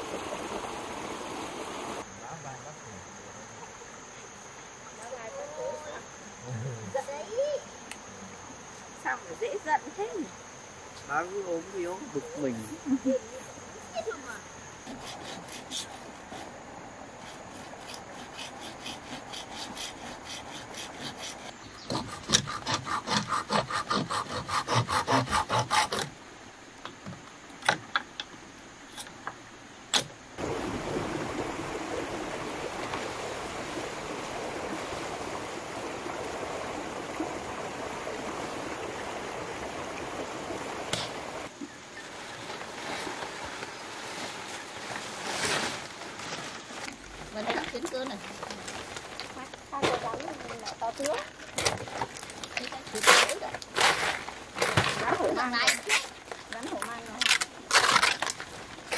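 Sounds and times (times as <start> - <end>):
hand saw cutting bamboo: 14.9 - 16.5, 17.2 - 26.1.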